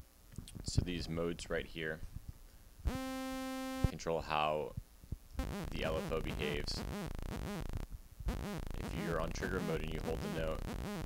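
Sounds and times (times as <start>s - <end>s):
synthesizer sawtooth note: 2.9s - 4.0s, 5.4s - 11.0s.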